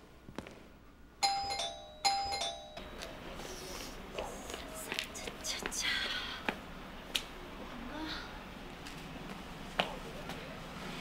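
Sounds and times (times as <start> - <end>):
electronic doorbell ding-dong: 1.2 - 3.0.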